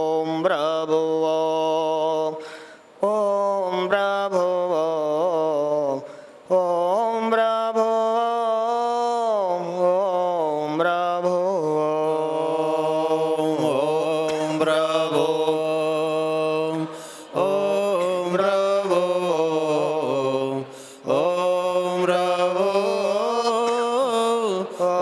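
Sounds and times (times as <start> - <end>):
man chanting a mantra: 0.0 - 2.4, 3.0 - 25.0.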